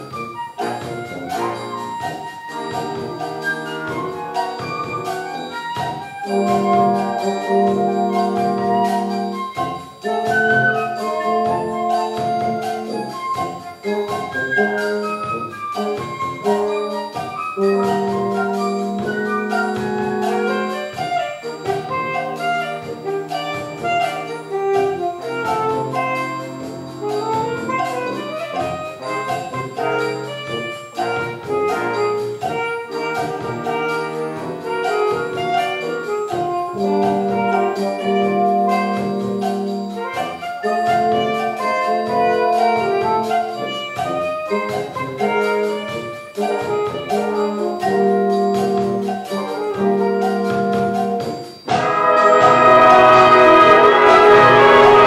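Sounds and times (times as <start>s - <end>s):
concert band playing bossa nova: 0.0s - 55.0s
drum kit beat: 0.0s - 55.0s.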